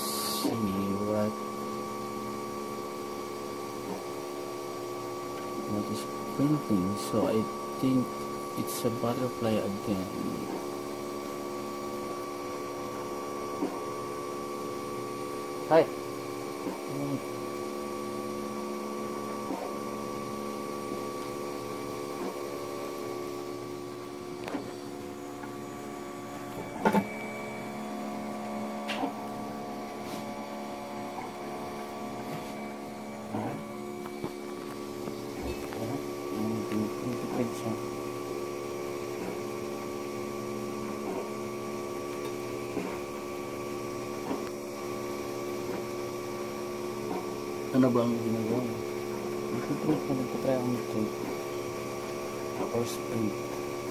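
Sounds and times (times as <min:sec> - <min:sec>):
cooling fans humming: 0:00.0 - 0:53.9
stepper motors whining: 0:00.0 - 0:53.9.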